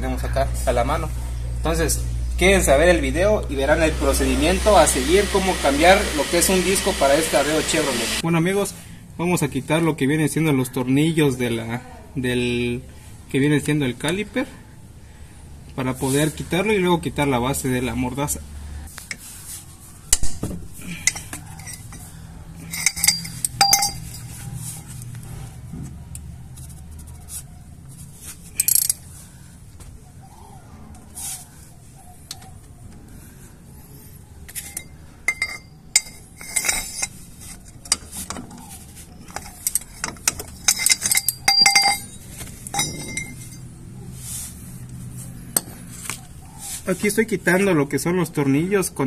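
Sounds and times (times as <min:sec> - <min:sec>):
metal clinks: 0:20.9 - 0:24.4, 0:34.6 - 0:38.5, 0:39.2 - 0:43.8
ratchet clicking: 0:22.7 - 0:24.2.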